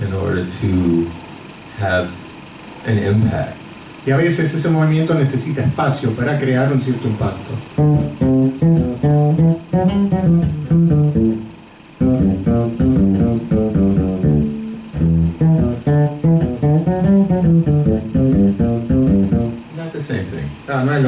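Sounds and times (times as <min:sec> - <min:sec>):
electric bass guitar solo: 0:07.8 - 0:19.7.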